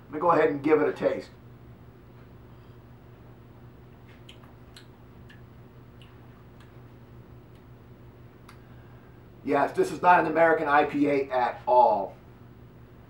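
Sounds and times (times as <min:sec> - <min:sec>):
low electrical hum: 0:00.0 - 0:13.0
lip and mouth sounds: 0:04.0 - 0:06.9.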